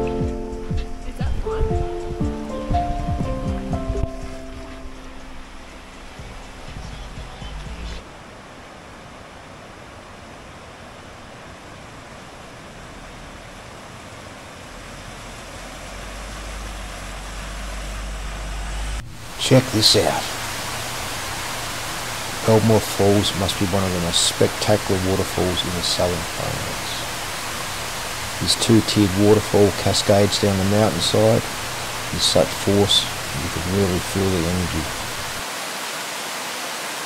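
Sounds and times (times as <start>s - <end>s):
background music: 0.0s - 8.0s
water rushing over causeway: 5.7s - 37.0s
vehicle driving through water: 12.9s - 20.3s.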